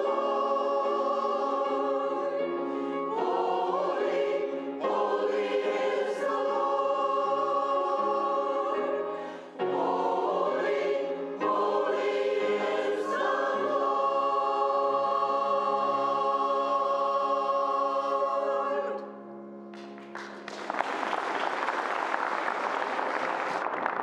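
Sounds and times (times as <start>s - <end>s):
choir singing: 0.0s - 19.2s.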